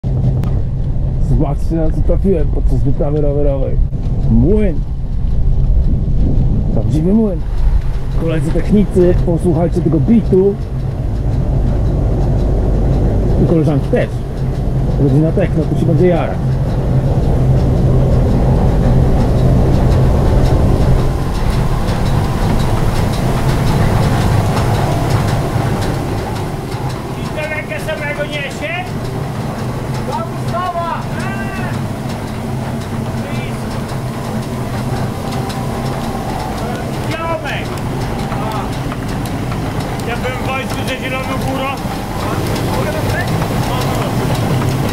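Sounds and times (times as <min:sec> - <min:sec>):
grain mill machinery clattering: 0:00.0 - 0:44.9.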